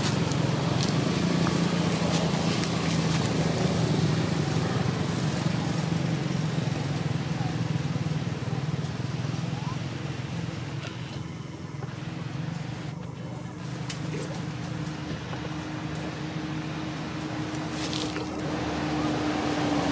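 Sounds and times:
vehicle engine running: 0.0 - 19.9.

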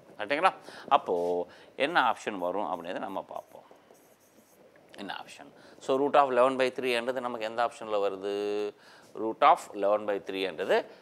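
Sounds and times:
stylus scratching on glass: 2.0 - 4.7.

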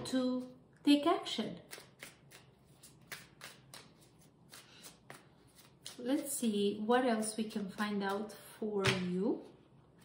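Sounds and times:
cards being shuffled: 1.7 - 6.1.

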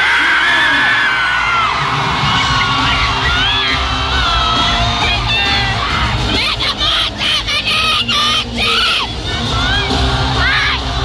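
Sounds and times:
crowd shouting and cheering: 0.0 - 11.0
loud amplified music: 0.0 - 11.0.

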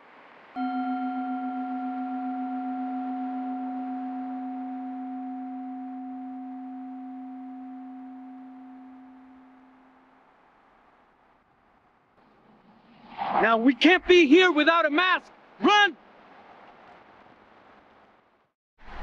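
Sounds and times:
singing bowl ringing: 0.6 - 10.0.

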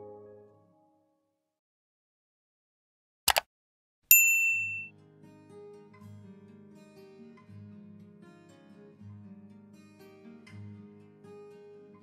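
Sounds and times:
bell ding notification: 4.1 - 4.9.

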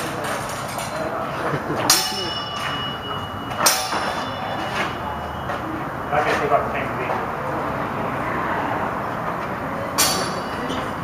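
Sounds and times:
longswords clacking: 1.9 - 2.9, 3.6 - 5.0, 10.0 - 10.6.

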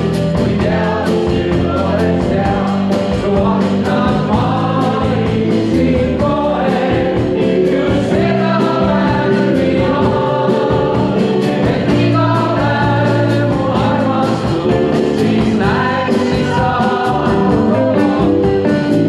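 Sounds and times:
cymbals keeping a beat: 0.0 - 19.0
group of voices singing: 0.0 - 19.0
live band playing: 0.0 - 19.0.

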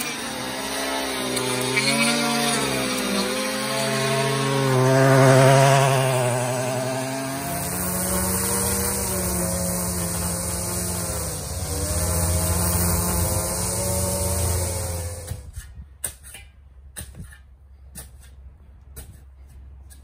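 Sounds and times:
power lawn edger running: 0.0 - 15.5.

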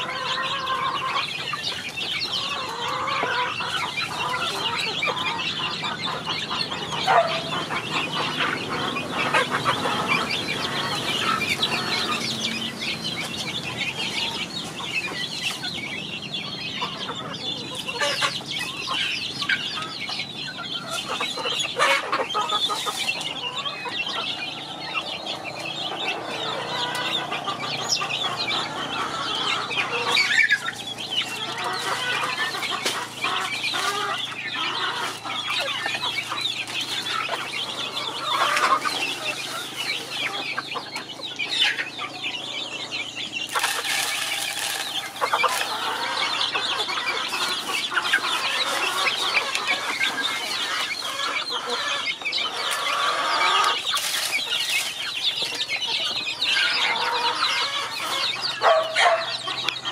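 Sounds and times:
chicks peeping: 0.0 - 59.9.

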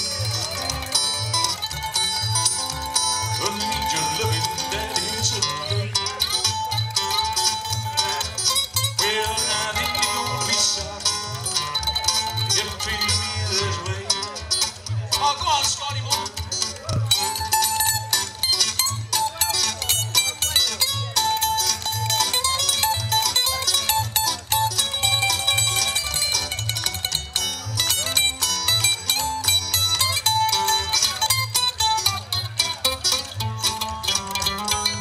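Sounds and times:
mandolin picking quick runs: 0.0 - 35.0
strummed acoustic guitar: 0.0 - 35.0
upright bass: 0.0 - 35.0.

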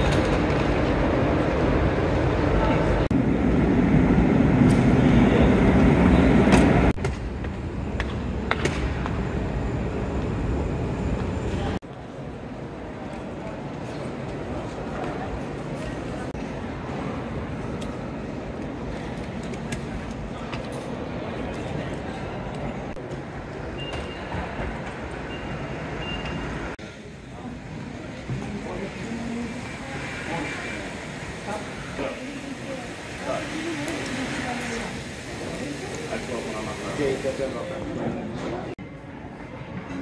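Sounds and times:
crowd talking: 26.6 - 40.0.

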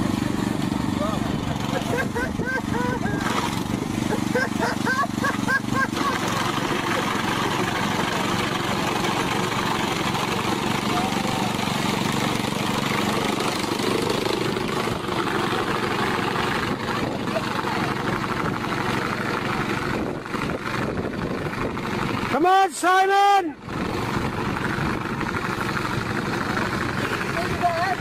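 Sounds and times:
mower engine cutting grass: 0.0 - 28.0.

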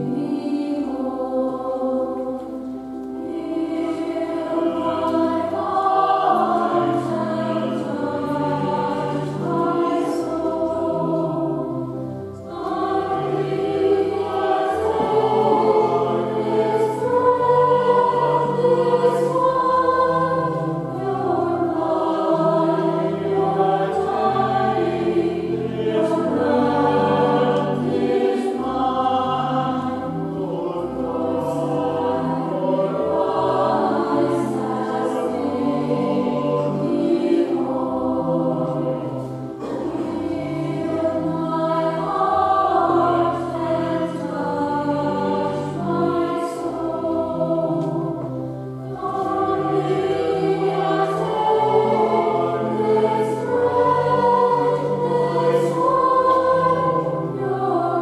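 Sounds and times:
church choir singing: 0.0 - 58.0
low accompanying line: 0.0 - 58.0.

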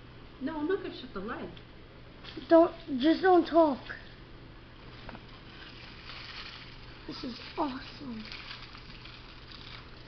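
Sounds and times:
steady rain falling: 5.3 - 10.0.

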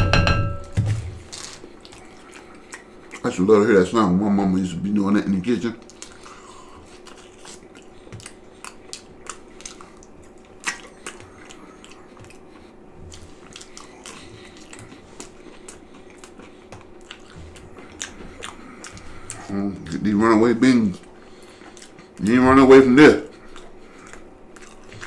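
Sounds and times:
faint steady hum: 0.0 - 25.0
person chewing food: 0.9 - 3.4, 5.8 - 22.3, 23.2 - 25.0.

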